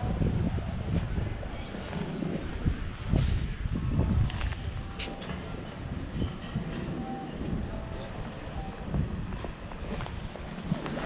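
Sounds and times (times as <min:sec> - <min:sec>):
wind: 0:00.0 - 0:11.0.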